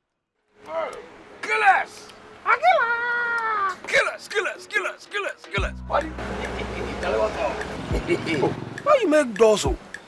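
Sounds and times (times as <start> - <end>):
person shouting a greeting: 0.7 - 6.1.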